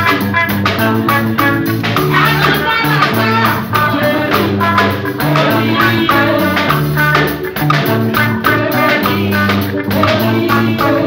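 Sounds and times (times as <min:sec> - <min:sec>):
drum beat: 0:00.0 - 0:11.0
electric bass: 0:00.0 - 0:11.0
electric guitar: 0:00.0 - 0:11.0.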